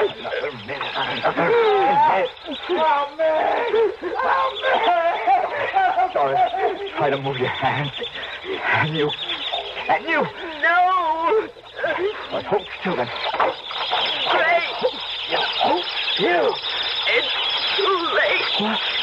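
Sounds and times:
rats squealing and squeaking: 0.0s - 19.0s
voice-like cries: 0.0s - 19.0s.

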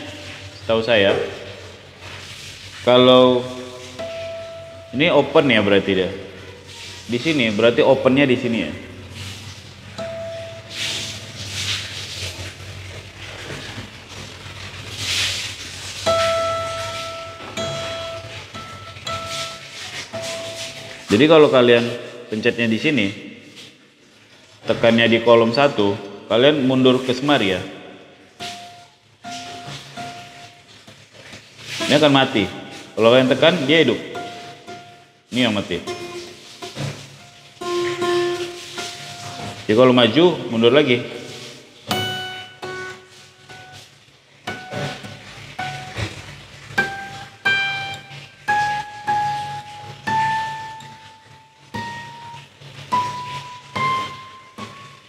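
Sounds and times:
guitar harmonics: 16.1s - 20.9s, 41.9s - 43.9s, 44.5s - 55.0s.

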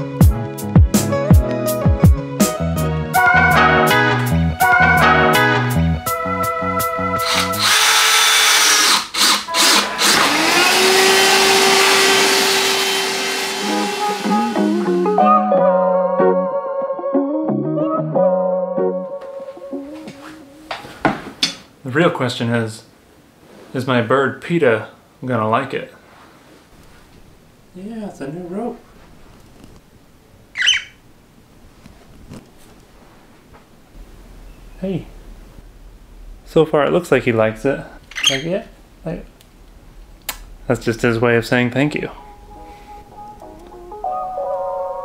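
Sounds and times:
background music: 0.0s - 7.8s, 9.5s - 20.8s, 41.0s - 45.0s
cordless drill whining: 7.2s - 15.0s
cockatiel squawk: 30.6s - 31.0s.

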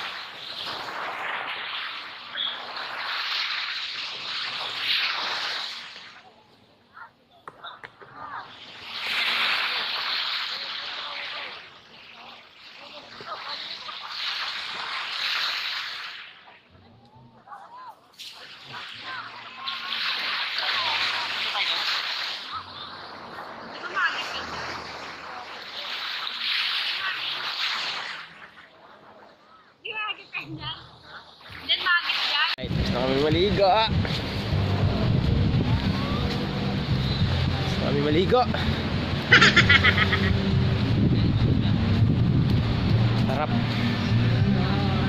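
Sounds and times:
small waves washing onto beach: 0.0s - 45.0s.

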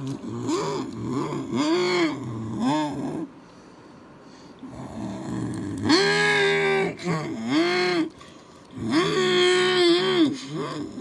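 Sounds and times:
person making engine noises: 0.0s - 3.4s, 4.5s - 11.0s.

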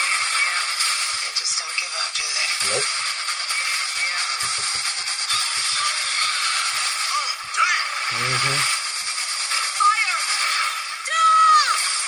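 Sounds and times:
voice burst: 2.6s - 2.9s, 7.6s - 8.7s.

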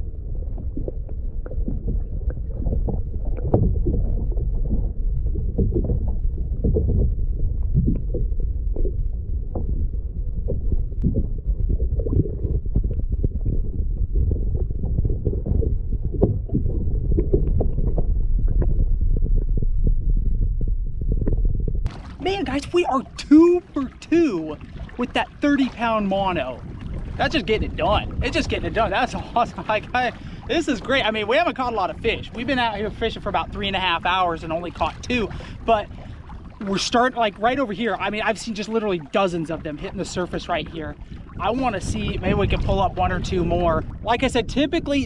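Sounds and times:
underwater rumble and sloshing: 0.0s - 45.0s.

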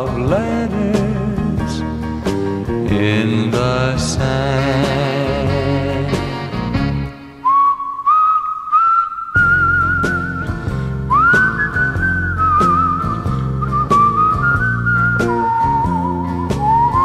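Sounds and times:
bass and guitar accompaniment: 0.0s - 7.6s, 9.4s - 17.0s
person whistling a melody: 7.4s - 17.0s.

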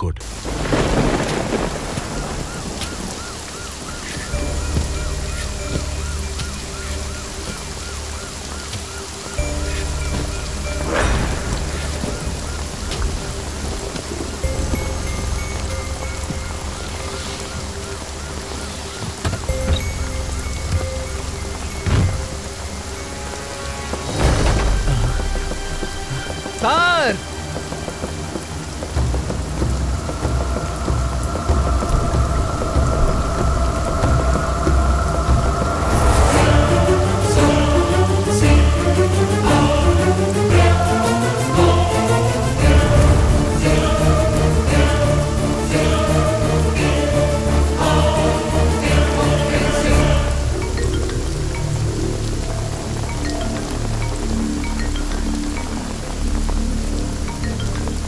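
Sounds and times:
thunder rumbling: 0.0s - 57.3s
faint film score: 0.0s - 58.0s
heavy rain falling: 0.0s - 58.0s
sharp thunder claps: 0.2s - 4.1s, 24.1s - 26.4s.

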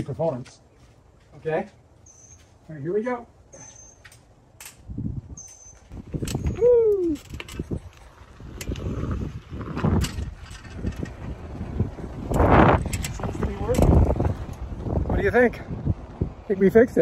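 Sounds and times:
wind rumble on microphone: 4.7s - 17.0s
bicycle tyres rolling on pavement: 5.9s - 17.0s.

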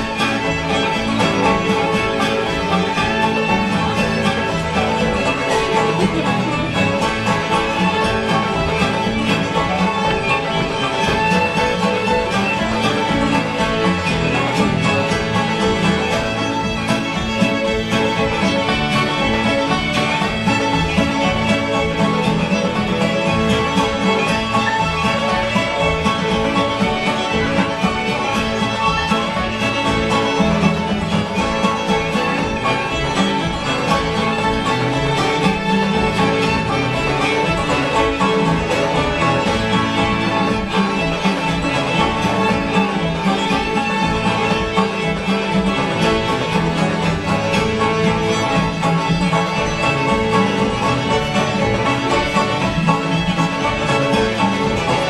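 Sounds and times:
acoustic guitar: 0.0s - 55.0s
banjo: 0.0s - 55.0s
fiddles: 0.0s - 55.0s
piano: 0.0s - 55.0s.

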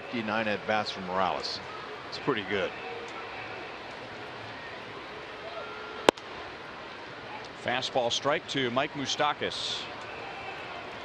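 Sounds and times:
crowd murmur: 0.0s - 7.7s, 9.8s - 11.0s.

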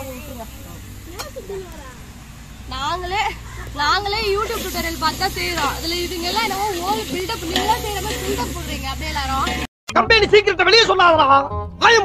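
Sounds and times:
steady hiss: 0.0s - 9.7s
woman talking: 2.7s - 9.7s.

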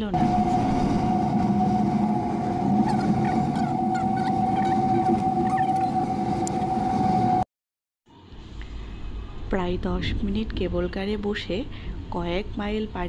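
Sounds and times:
haul rope low rumble: 0.0s - 7.4s, 8.4s - 13.0s
cable car high whine: 0.0s - 7.5s.

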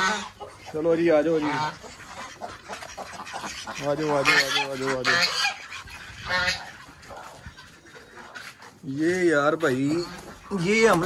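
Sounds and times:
duck quacking: 0.0s - 11.0s.

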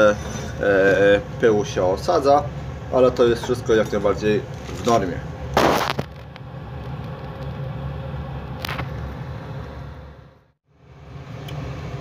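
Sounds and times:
boiler blower fan and flame rumble: 0.0s - 12.0s.

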